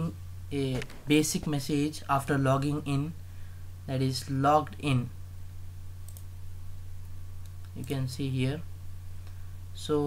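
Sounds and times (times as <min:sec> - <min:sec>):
low electrical hum: 0:00.0 - 0:10.0
computer mouse clicks: 0:06.1 - 0:06.3.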